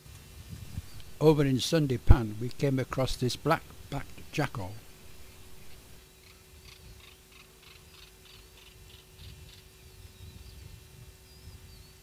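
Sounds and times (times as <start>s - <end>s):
steady hum: 0.0s - 12.0s
small bird chirping: 6.0s - 12.0s.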